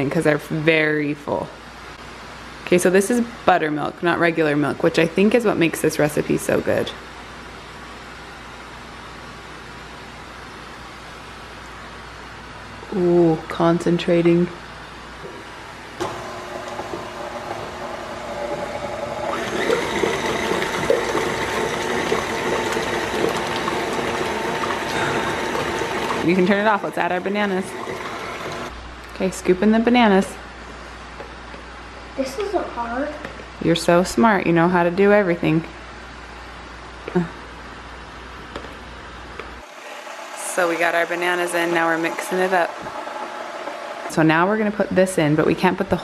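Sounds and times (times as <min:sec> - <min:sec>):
stand mixer running: 0:16.0 - 0:28.7, 0:39.7 - 0:44.1.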